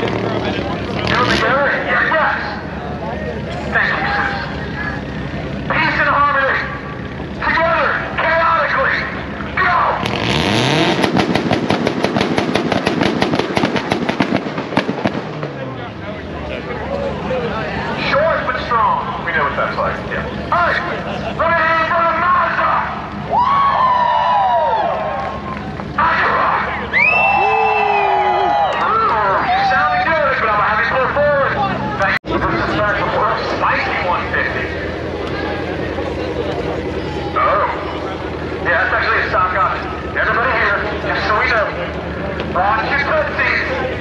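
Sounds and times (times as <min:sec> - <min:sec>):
racing car engine revving: 0:00.0 - 0:06.0, 0:09.0 - 0:21.2
crowd voices and shouts: 0:00.0 - 0:10.1, 0:15.0 - 0:44.0.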